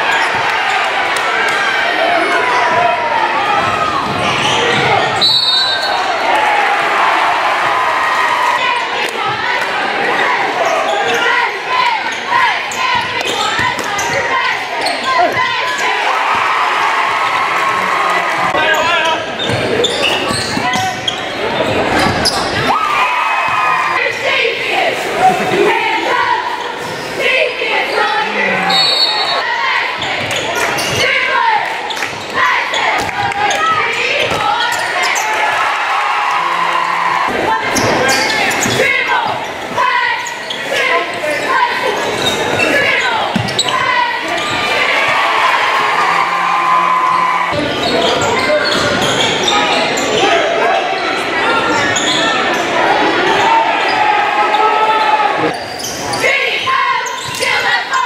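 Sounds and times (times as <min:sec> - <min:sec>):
crowd voices and shouts: 0:00.0 - 0:58.0
people shouting: 0:32.4 - 0:48.6.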